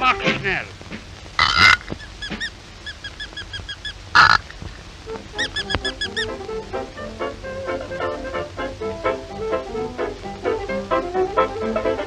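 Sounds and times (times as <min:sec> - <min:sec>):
squeaky cartoon music: 0:05.1 - 0:08.6.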